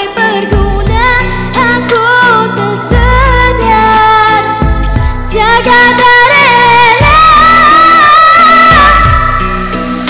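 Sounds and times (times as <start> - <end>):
woman singing with vibrato: 0.0 - 4.6, 5.2 - 9.7
pop instrumental backing track: 0.0 - 10.0.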